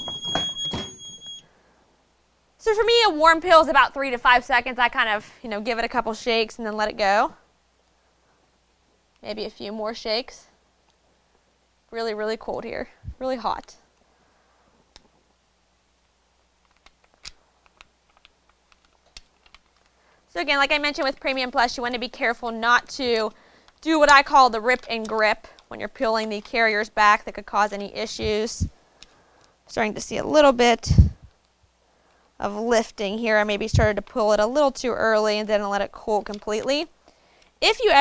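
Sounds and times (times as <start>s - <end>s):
handling noise: 0.0s - 1.4s
high-pitched electronic beep: 0.0s - 1.4s.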